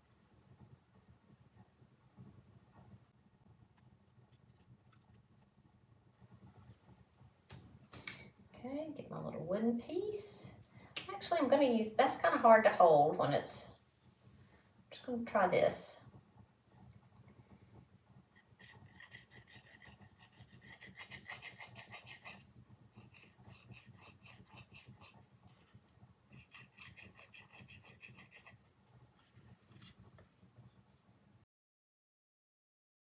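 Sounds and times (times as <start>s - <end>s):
wooden stick scraping wood: 18.4s - 22.4s.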